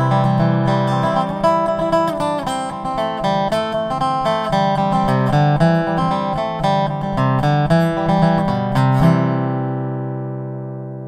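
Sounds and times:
resonator guitar chord ringing: 0.0 - 11.0.

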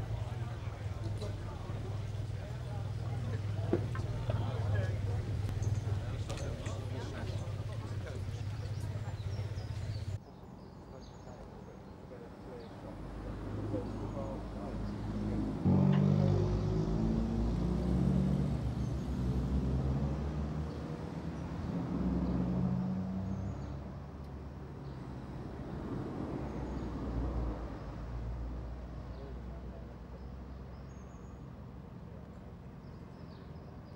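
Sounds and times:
vehicle engine running: 0.0 - 10.2.

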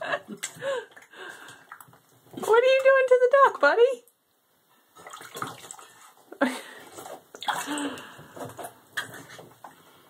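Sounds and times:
bathwater splashing: 0.0 - 3.9, 4.9 - 9.7.

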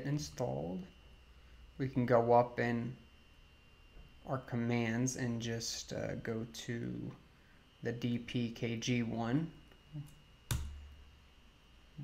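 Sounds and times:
keyboard keystroke: 10.5 - 10.8.

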